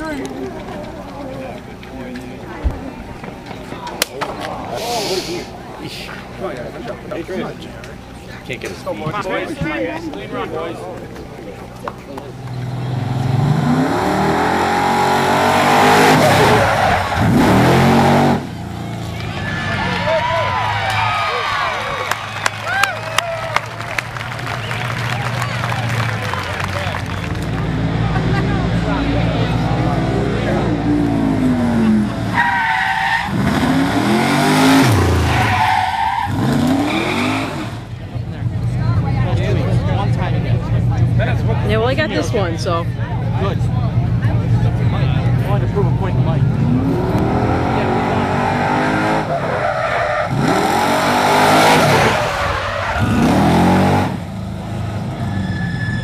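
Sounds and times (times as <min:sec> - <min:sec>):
fire truck engine revving: 0:12.3 - 0:20.0, 0:23.6 - 0:42.1, 0:42.9 - 0:56.0.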